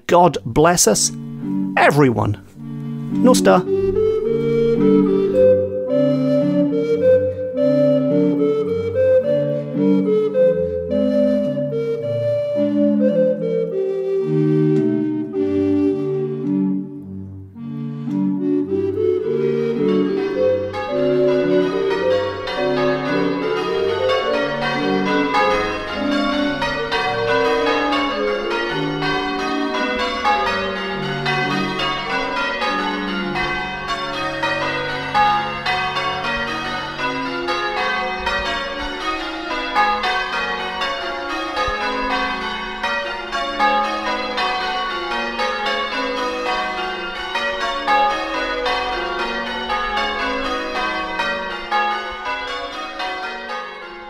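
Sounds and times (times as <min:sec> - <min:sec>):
church bells pealing: 0:00.0 - 0:11.7, 0:17.5 - 0:54.0.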